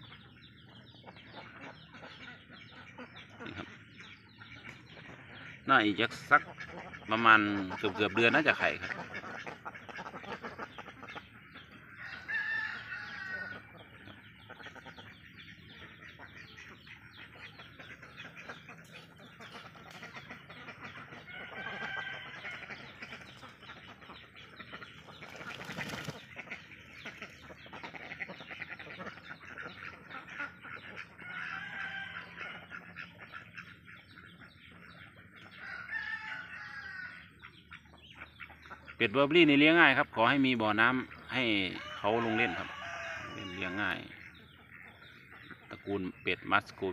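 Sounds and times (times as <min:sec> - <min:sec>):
roosters crowing: 0:11.5 - 0:14.2, 0:20.2 - 0:23.0, 0:31.0 - 0:33.0, 0:35.4 - 0:37.4, 0:40.8 - 0:44.4.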